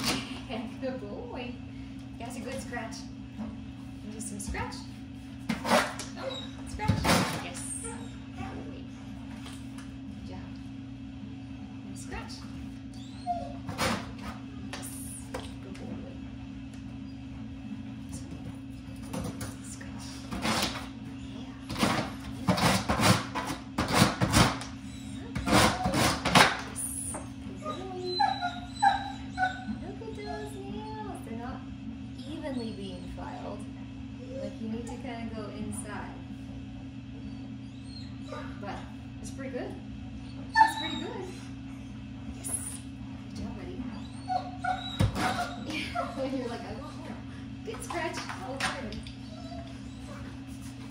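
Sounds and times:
steady low hum: 0.0s - 50.9s
dog whining: 5.6s - 8.7s, 12.8s - 14.2s, 20.2s - 22.1s, 24.4s - 31.0s, 34.2s - 34.7s, 37.2s - 38.9s, 40.2s - 42.9s, 43.8s - 47.0s, 48.8s - 50.9s.

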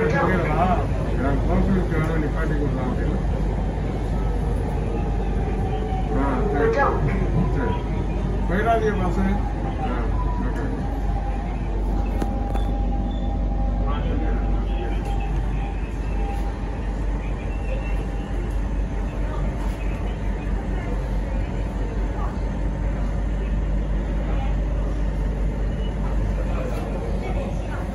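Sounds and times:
passenger voices: 0.0s - 27.9s
train running rumble: 0.0s - 27.9s.

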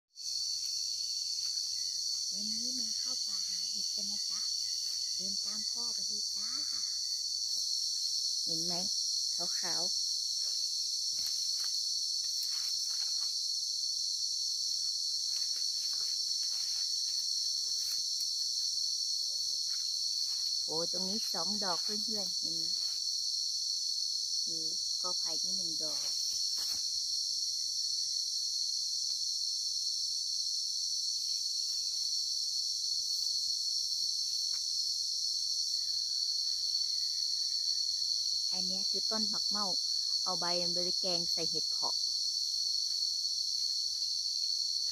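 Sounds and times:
crickets buzzing: 0.1s - 44.9s
insect chorus: 0.1s - 44.9s
faint rustles in undergrowth: 9.8s - 23.4s, 25.9s - 27.1s.

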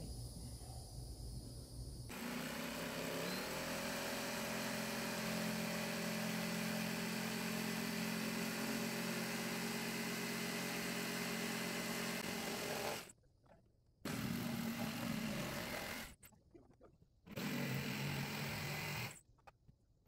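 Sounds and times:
jigsaw cutting wood: 2.1s - 13.1s, 14.1s - 16.2s, 17.3s - 19.2s.

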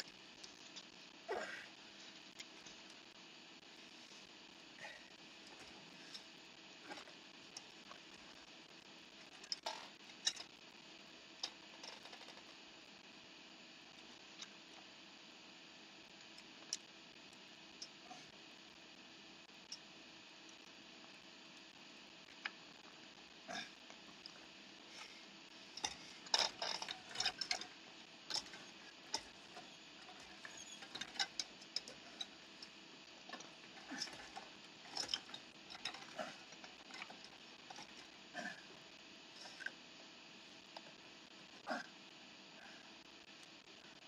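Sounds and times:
wheelchair moving: 25.8s - 32.4s.

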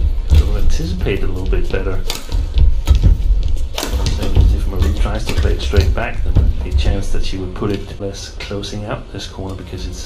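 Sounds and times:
badminton racket hits: 0.0s - 8.0s
steady low rumble: 0.0s - 10.0s.

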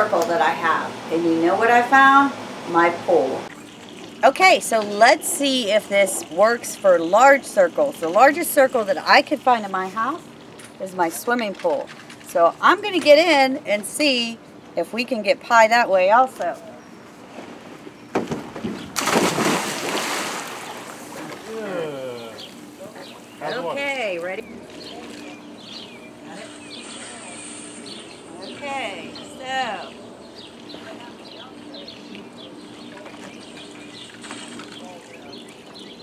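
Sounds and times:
steady low hum: 0.0s - 36.0s
water splashing in pool: 17.3s - 22.4s
small birds chirping: 20.5s - 36.0s.

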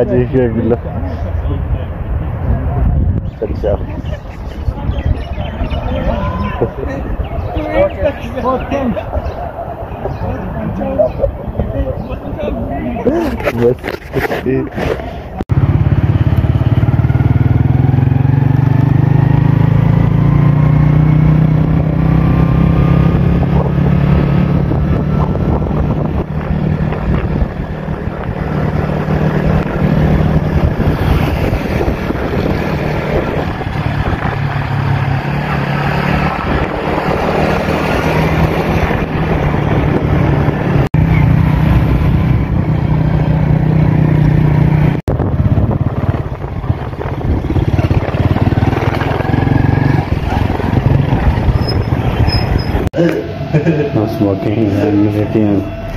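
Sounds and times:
motorcycle engine running: 15.5s - 53.9s.

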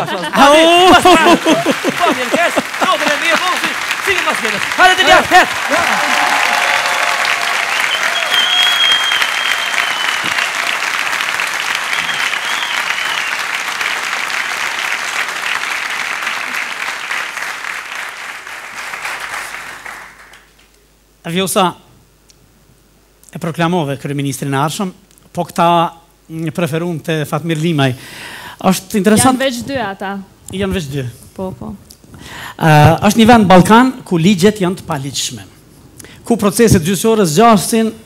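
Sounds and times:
audience applauding: 0.4s - 20.7s.

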